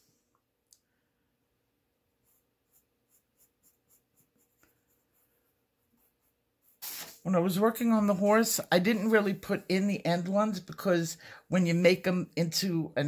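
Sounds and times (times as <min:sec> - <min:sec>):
pencil scratching on paper: 0:02.2 - 0:07.0.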